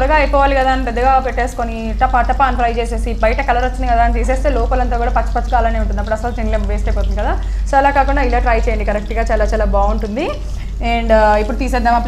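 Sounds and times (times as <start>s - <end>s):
steady low hum: 0.0s - 12.0s
woman talking: 0.0s - 12.0s.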